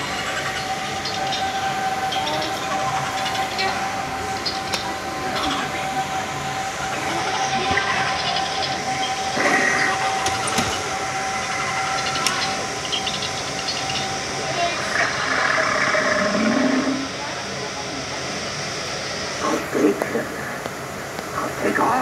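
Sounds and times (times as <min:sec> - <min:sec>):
constant background noise: 0:00.0 - 0:22.0
indistinct voices: 0:00.0 - 0:22.0
thin steady high tone: 0:00.0 - 0:22.0.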